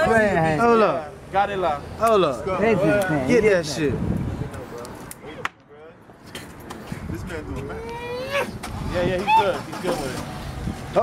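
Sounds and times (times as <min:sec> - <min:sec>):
passing car traffic: 0:00.0 - 0:11.0.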